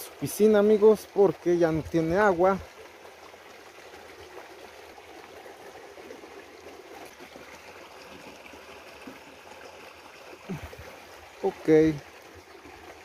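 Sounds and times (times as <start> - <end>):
water trickling into plastic tub: 0.0 - 13.0.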